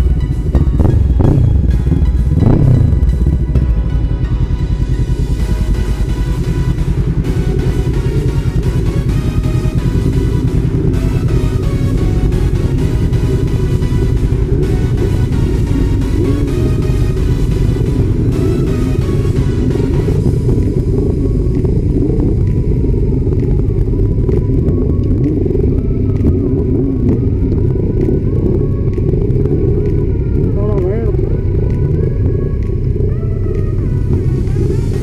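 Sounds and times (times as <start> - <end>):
motorcycle engines rumbling: 0.0 - 35.0
music: 0.0 - 35.0.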